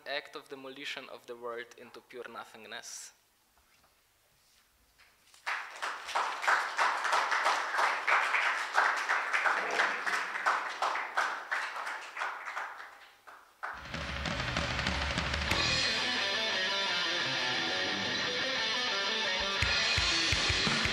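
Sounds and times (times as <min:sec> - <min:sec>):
audience applauding: 0:05.4 - 0:18.5
metal music with guitar: 0:13.8 - 0:20.9.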